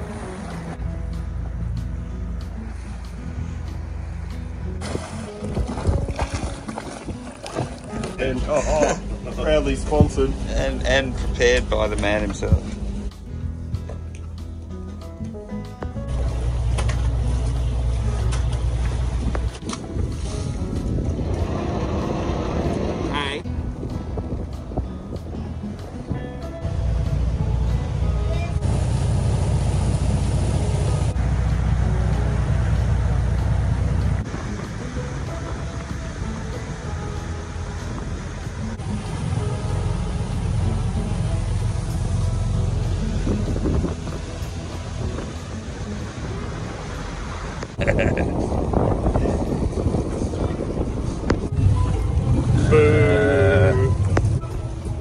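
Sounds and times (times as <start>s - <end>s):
water noise: 0.0s - 13.2s, 16.1s - 24.8s, 26.6s - 55.0s
boat engine rumble: 0.0s - 55.0s
wind noise: 4.8s - 8.0s, 16.2s - 55.0s.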